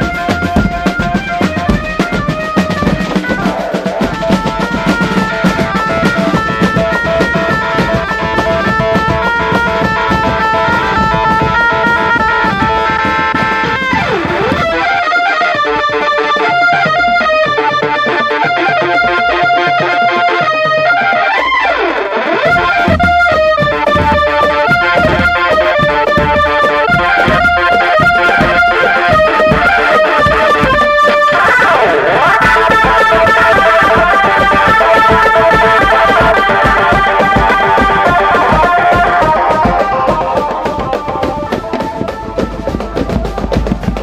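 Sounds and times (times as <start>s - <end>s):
marching drums: 0.0s - 44.0s
reedy melody: 0.0s - 44.0s.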